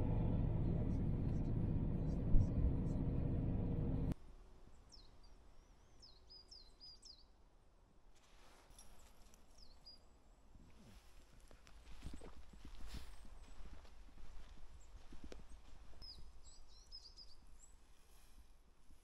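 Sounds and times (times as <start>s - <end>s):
van engine and road rumble: 0.0s - 4.2s
small birds chirping: 0.5s - 7.4s, 9.0s - 10.4s, 14.8s - 17.9s
footsteps crunching on gravel: 10.9s - 16.0s.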